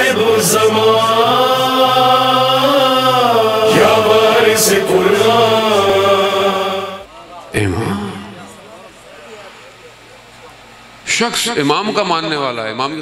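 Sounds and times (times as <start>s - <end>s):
man chanting: 0.0s - 7.0s.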